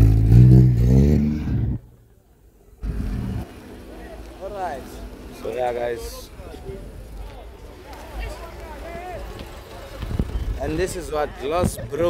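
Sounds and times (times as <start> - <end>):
car engine revving: 0.0 - 1.8, 2.8 - 6.0.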